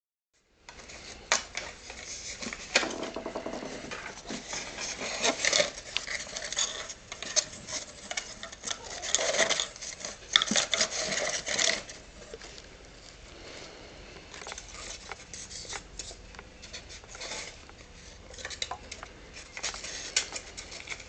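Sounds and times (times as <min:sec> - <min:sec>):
rustling and scraping of packing: 0:00.7 - 0:21.0.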